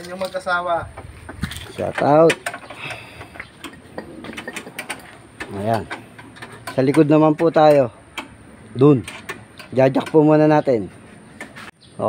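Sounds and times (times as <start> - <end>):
hand tools clinking against metal: 1.4 - 10.8.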